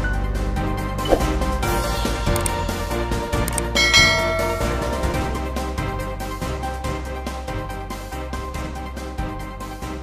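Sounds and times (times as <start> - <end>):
background music with steady beat: 0.0 - 10.0
bright bell chime: 3.7 - 5.5.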